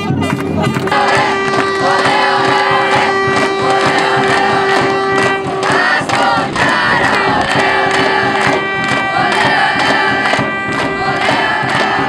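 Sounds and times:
crowd chanting and cheering: 0.0 - 12.0
drum beating: 0.0 - 12.0.

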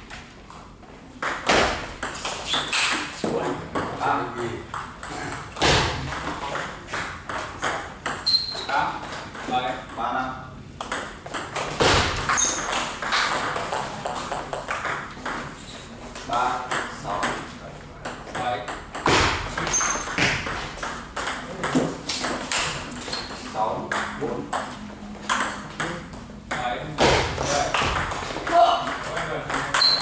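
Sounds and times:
ball bouncing on table: 1.2 - 4.0, 4.7 - 8.3, 10.8 - 15.5, 18.0 - 30.0
table tennis ball hit by bats: 1.2 - 4.0, 4.7 - 8.3, 10.8 - 15.5, 18.0 - 30.0.

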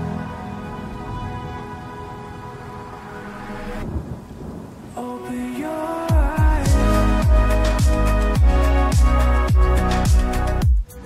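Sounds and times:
chill electronic music: 0.0 - 4.1, 4.8 - 11.0.

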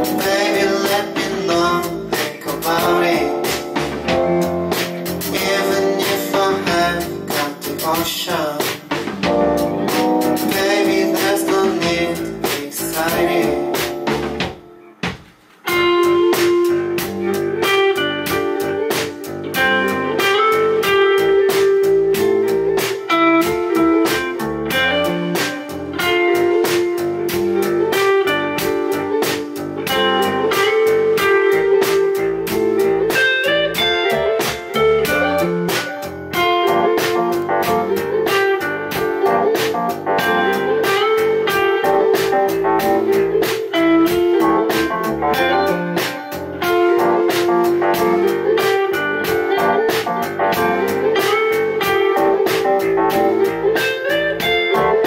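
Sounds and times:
drum kit beat with cymbals: 0.0 - 55.0
electric guitar lines: 13.2 - 55.0.

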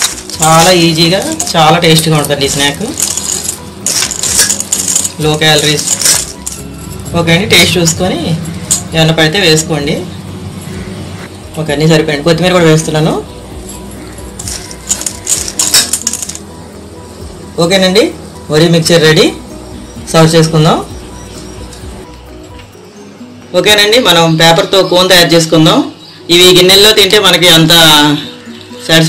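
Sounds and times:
puffed rice rattling in metal bowl: 0.0 - 6.7.

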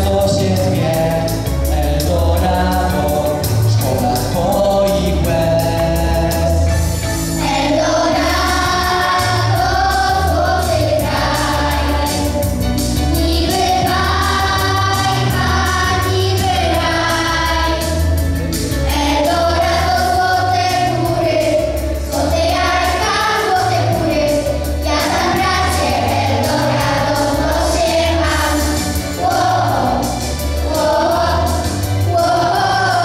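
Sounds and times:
bass and drum accompaniment: 0.0 - 33.0
children singing: 7.4 - 12.5, 13.1 - 18.2, 18.9 - 33.0.

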